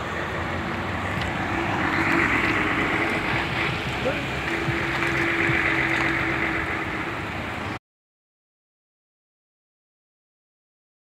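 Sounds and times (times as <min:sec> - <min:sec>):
vehicle engines running: 0:00.0 - 0:07.8.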